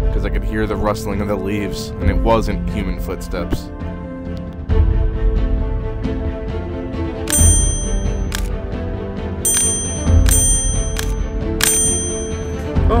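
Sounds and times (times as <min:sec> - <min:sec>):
bell-like ringing hits: 0:07.3 - 0:08.4, 0:09.5 - 0:12.7.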